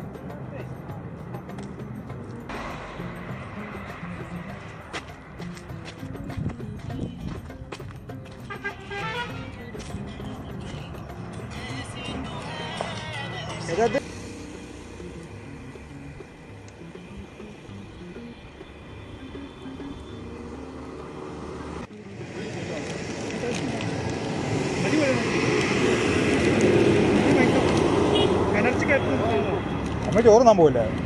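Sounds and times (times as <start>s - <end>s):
wind and road noise: 0.0s - 31.0s.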